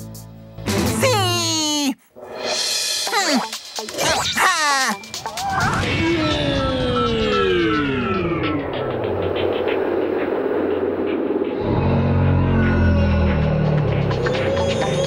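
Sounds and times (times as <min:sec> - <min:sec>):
noisy whoosh: 0:05.6 - 0:12.8.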